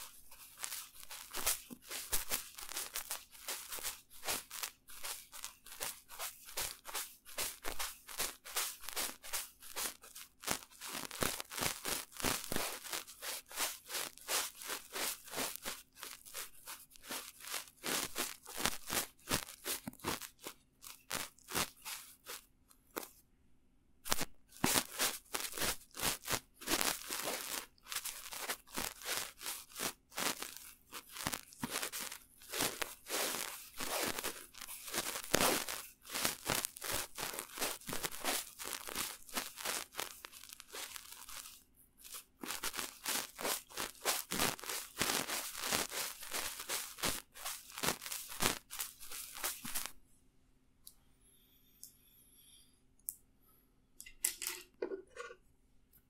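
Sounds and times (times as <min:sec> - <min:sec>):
paintbrush bristles scratching microphone: 0:00.0 - 0:22.4, 0:24.1 - 0:49.9.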